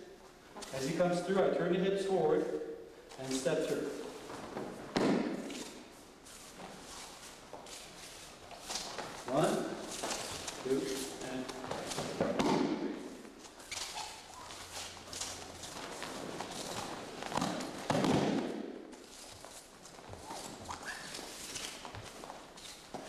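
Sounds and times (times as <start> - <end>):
bare feet shuffling on mat: 3.2 - 23.0.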